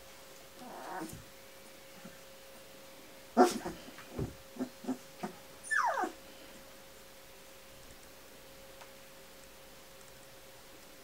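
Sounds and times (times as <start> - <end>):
puppies whimpering and squeaking: 5.6 - 6.2.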